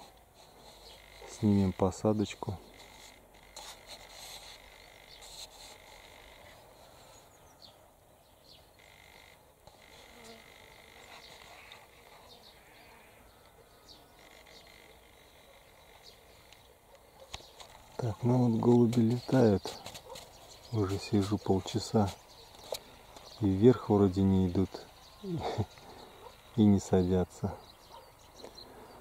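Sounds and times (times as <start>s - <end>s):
distant animal calls: 0.0s - 2.0s, 2.6s - 7.8s, 8.7s - 18.2s.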